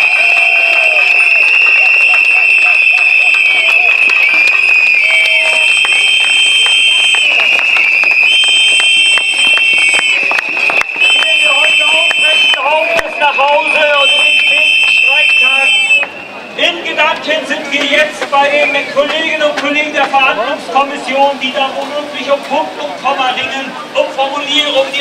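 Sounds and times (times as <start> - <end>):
people shouting: 0.0 - 6.3
hand clapping: 0.0 - 16.2
shrill whistles blowing: 0.0 - 16.7.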